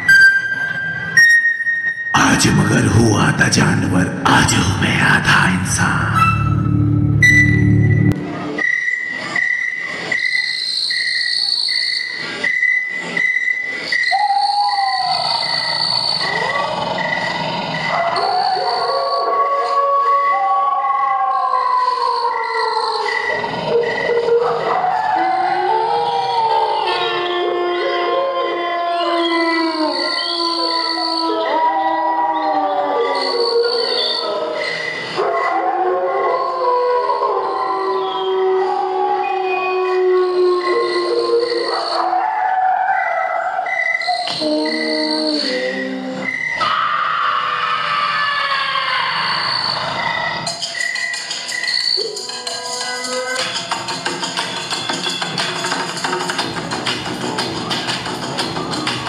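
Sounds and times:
pulsing high chirp: 4.4s - 8.8s
long gliding wails: 5.9s - 8.7s, 44.3s - 46.5s.

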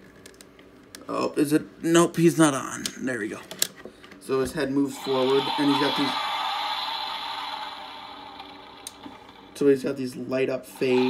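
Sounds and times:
toy electronic hissing effect: 4.9s - 9.6s, 10.8s - 11.0s.

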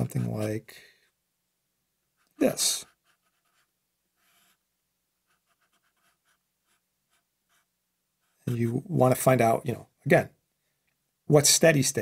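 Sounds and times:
marker strokes on paper: 0.0s - 0.5s, 2.2s - 4.6s, 5.2s - 8.8s.

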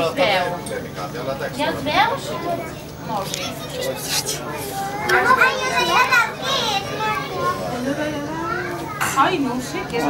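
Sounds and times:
children chattering and calling out: 1.5s - 10.0s.

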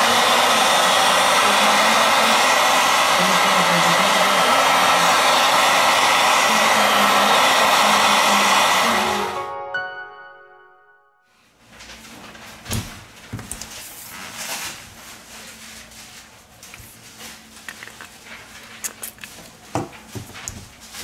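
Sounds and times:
heat gun blowing: 0.0s - 9.4s.

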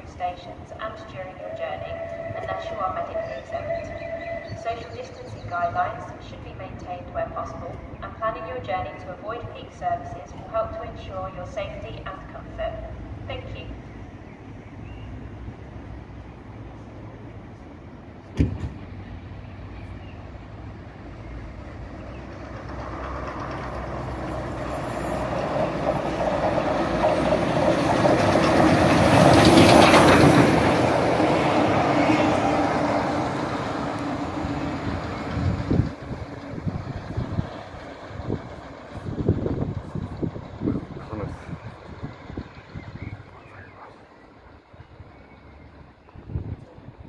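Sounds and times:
steam train rumbling past: 0.0s - 47.0s
wheels beating over rail joints: 21.5s - 43.4s.

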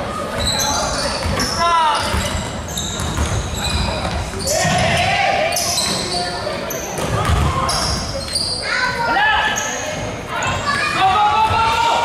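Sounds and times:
sneakers squeaking on floor: 0.1s - 11.7s
basketball bouncing: 2.1s - 5.0s, 7.0s - 7.6s.

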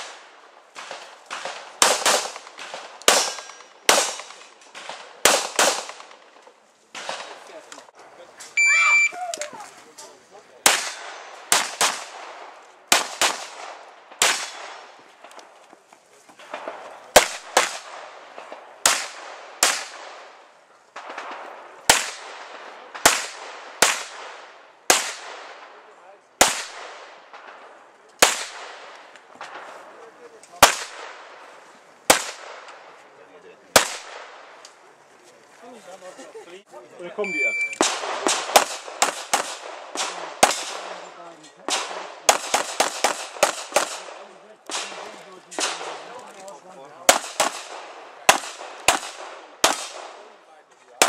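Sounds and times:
pistol shots echoing: 0.0s - 6.2s, 10.6s - 15.0s, 16.5s - 20.4s, 21.0s - 25.8s, 26.4s - 27.6s, 28.2s - 28.9s, 32.1s - 32.9s, 33.7s - 34.6s, 37.8s - 41.0s, 41.7s - 46.1s, 47.1s - 50.3s
shot timer beep: 8.6s - 9.2s, 37.2s - 37.8s.

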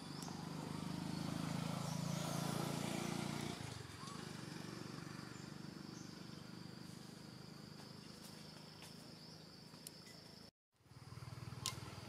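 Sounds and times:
insects trilling: 4.0s - 12.0s.

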